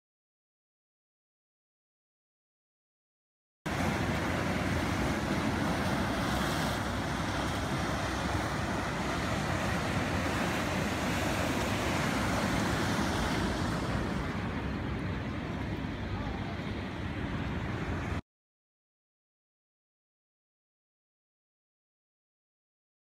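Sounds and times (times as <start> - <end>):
surf breaking on rocky shore: 3.7 - 18.2
wind rumbling on microphone: 3.7 - 18.2.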